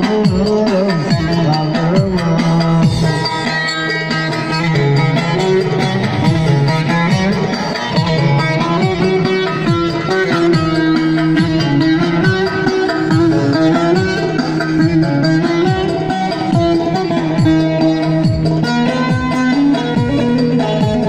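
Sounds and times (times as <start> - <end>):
electronic keyboard: 0.0 - 21.0
plucked lutes: 0.0 - 21.0
steady drum beat: 0.0 - 21.0.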